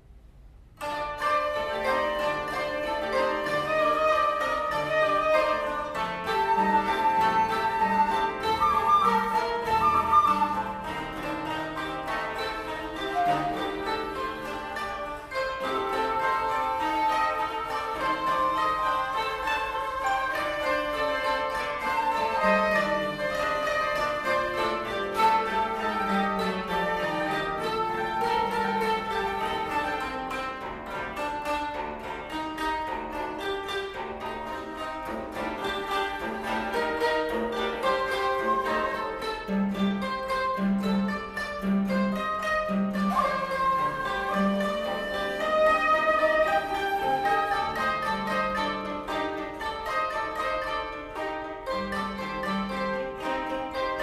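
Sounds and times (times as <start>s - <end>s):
koto ensemble plucking melodies: 0.0s - 54.0s.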